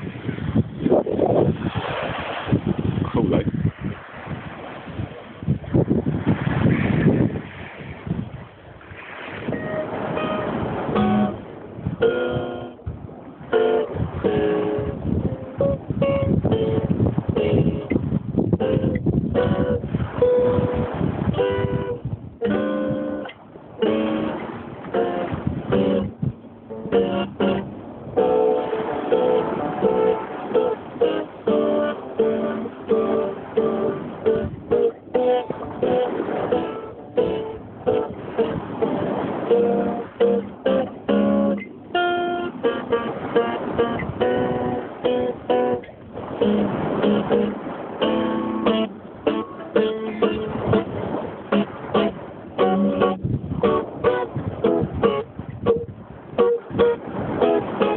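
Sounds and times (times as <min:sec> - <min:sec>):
acoustic guitar picking and strumming: 0:00.0 - 0:57.9.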